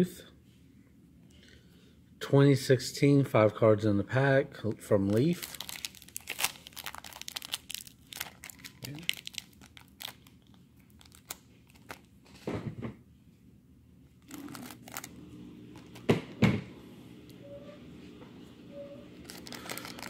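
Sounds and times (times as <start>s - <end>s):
foil wrapper tearing and crinkling: 5.1s - 12.1s, 14.2s - 15.1s, 19.2s - 20.0s.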